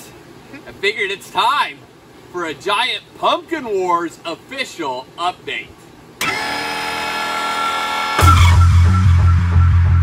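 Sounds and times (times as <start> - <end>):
held synth chord: 6.3 - 10.0
heavy pulsing bass beat: 8.2 - 10.0.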